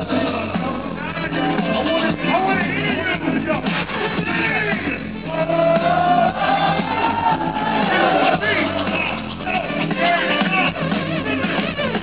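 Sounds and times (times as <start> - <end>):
live hip-hop band with vocals: 0.0 - 12.0.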